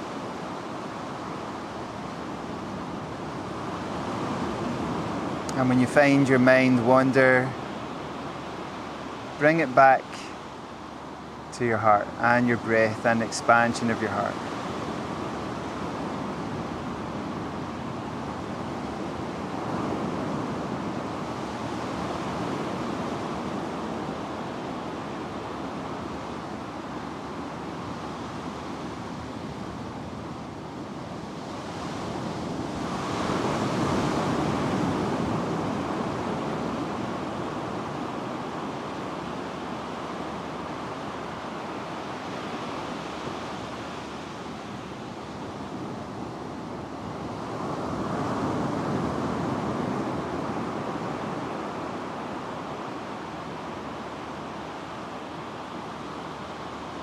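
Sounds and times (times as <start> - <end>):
ocean waves breaking: 0.0 - 57.0.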